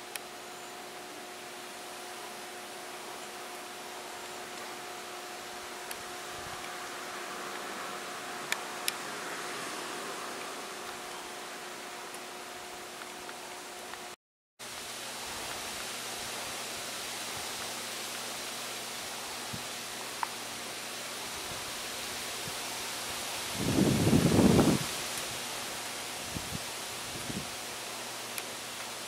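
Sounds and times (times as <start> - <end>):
outdoor background hiss: 0.0 - 29.0.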